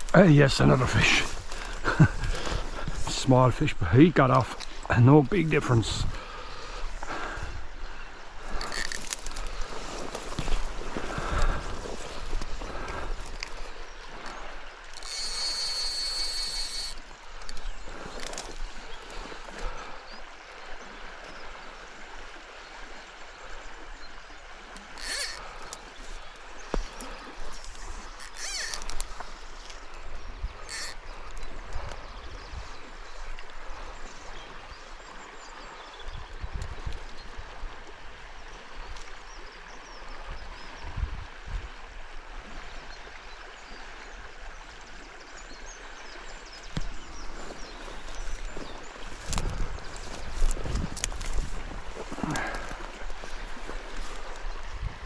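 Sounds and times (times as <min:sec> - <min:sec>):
wind rumbling on microphone: 0:00.0 - 0:20.4, 0:35.5 - 0:43.2, 0:44.2 - 0:55.0
river water rushing: 0:00.0 - 0:36.2, 0:36.8 - 0:55.0.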